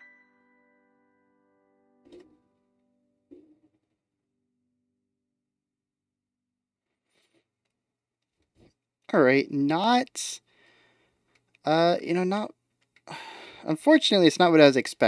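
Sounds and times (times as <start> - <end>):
soft piano notes ringing: 0.0 - 3.6.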